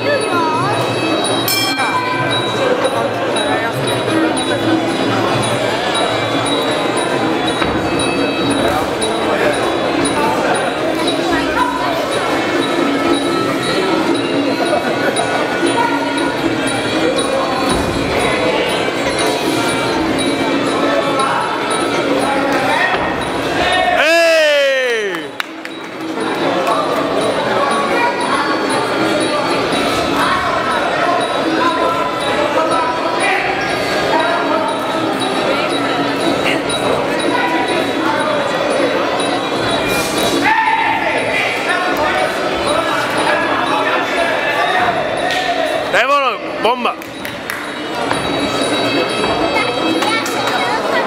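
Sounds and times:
crowd chatter in a hall: 0.0 - 51.0
hall noise: 1.4 - 5.4.

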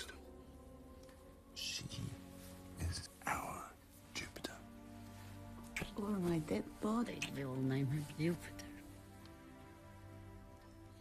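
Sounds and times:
man whispering: 0.0 - 0.4, 1.5 - 4.9.

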